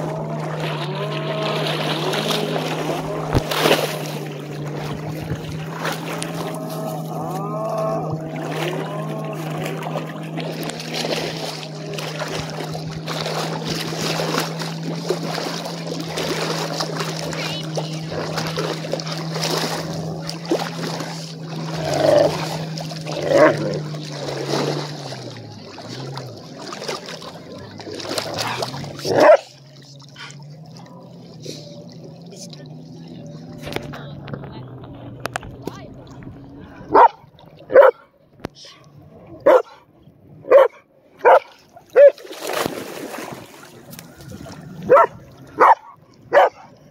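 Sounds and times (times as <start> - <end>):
water splashing from wading: 0.0 - 46.9
dog barking: 29.2 - 29.5, 36.9 - 38.1, 39.4 - 39.8, 40.5 - 42.2, 44.9 - 46.7.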